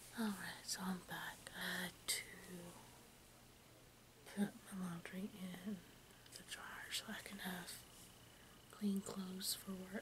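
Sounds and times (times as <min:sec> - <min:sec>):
woman talking softly: 0:00.1 - 0:03.0, 0:04.2 - 0:07.9, 0:08.7 - 0:10.0.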